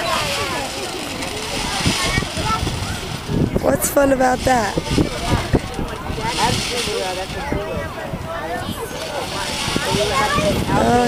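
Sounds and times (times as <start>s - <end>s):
children babbling and calling: 0.0s - 11.0s
wind buffeting microphone: 0.0s - 11.0s.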